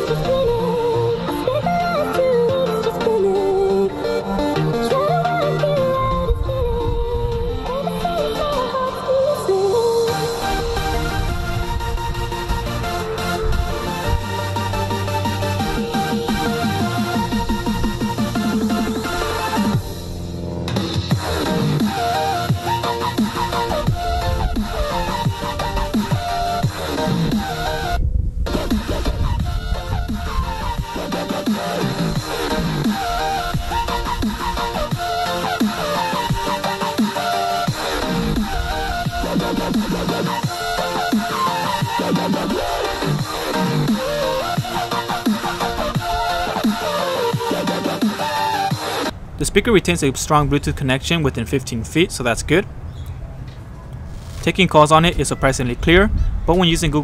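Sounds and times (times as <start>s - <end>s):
song over a beat on speaker: 0.0s - 20.1s, 20.8s - 49.1s
electronic dance music: 8.4s - 49.1s.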